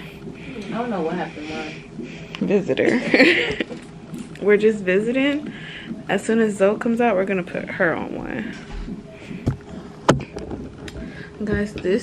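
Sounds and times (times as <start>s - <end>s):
sharp clicks and knocks: 8.8s - 12.0s.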